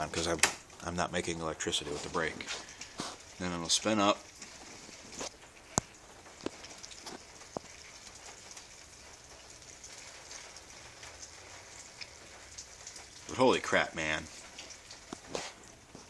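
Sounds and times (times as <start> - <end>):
rain hissing on a surface: 0.0 - 16.0.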